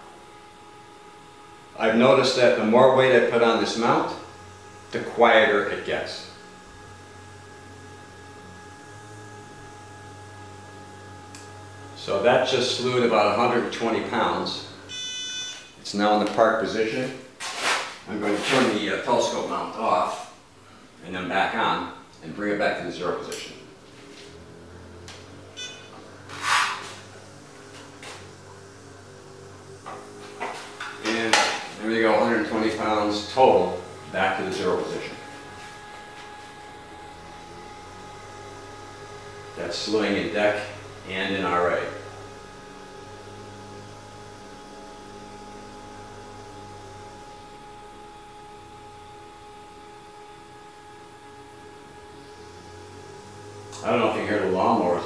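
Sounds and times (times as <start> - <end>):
faint motor whine: 0.0 - 55.0
steady low hum: 0.0 - 55.0
lawnmowers droning: 7.6 - 15.0, 22.4 - 48.5, 50.4 - 55.0
short electronic beep: 14.9 - 15.8, 25.5 - 26.0.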